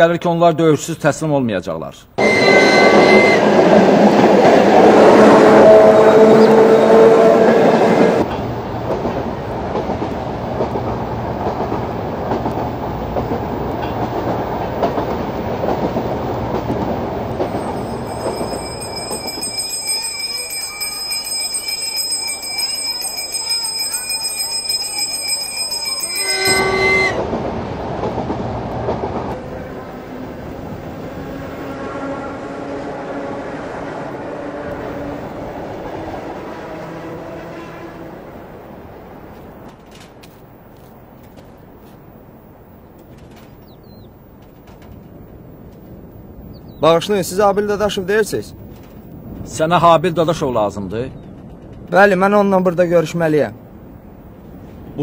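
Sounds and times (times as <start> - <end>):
high steady ringing: 2.2 - 3.5, 17.5 - 27.2
horn-like tone: 2.2 - 3.6, 5.0 - 8.0, 18.1 - 27.2, 31.6 - 34.8
train wheels rumbling on rails: 2.2 - 55.0.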